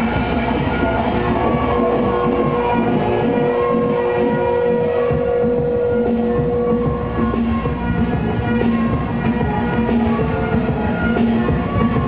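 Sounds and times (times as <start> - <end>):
electronic music: 0.0 - 12.0.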